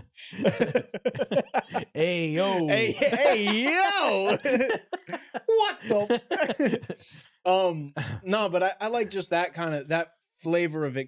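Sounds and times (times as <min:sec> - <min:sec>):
men laughing heartily: 0:00.4 - 0:07.2.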